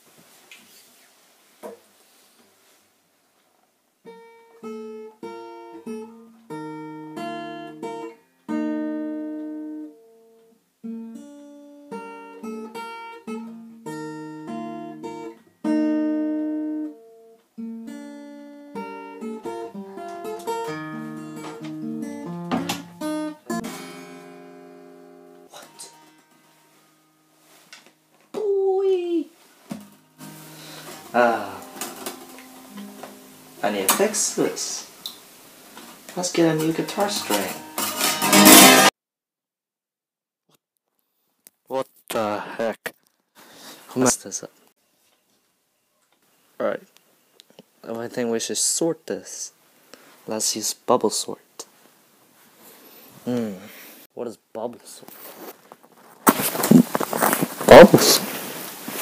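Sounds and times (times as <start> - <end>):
acoustic guitar fingerstyle melody: 4.0 - 28.2, 29.7 - 34.2, 36.6 - 38.9.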